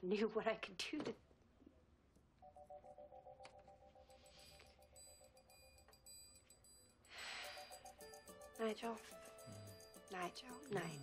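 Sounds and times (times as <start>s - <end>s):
faint steady tones: 2.4s - 11.0s.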